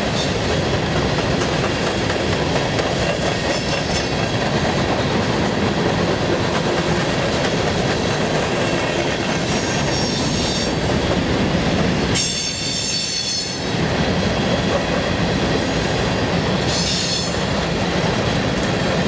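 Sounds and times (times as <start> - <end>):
train wheels rumbling over rail joints: 0.0 - 19.0.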